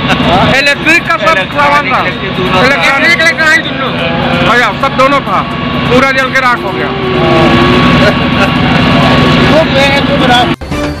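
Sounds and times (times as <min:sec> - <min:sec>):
street traffic: 0:00.0 - 0:11.0
man crying voice: 0:06.7 - 0:08.6.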